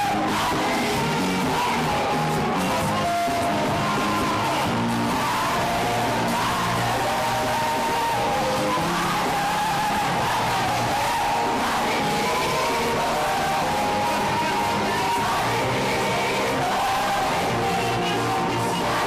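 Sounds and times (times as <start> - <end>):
gospel band playing: 0.0 - 19.0
many voices singing: 0.0 - 19.0.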